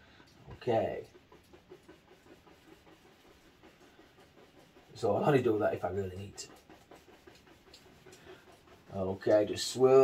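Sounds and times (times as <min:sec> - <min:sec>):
brush scrubbing paint on canvas: 0:00.0 - 0:10.0.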